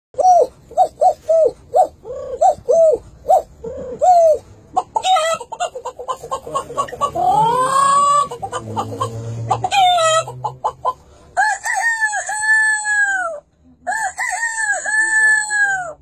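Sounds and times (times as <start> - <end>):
man imitating animal calls: 6.6 - 10.6.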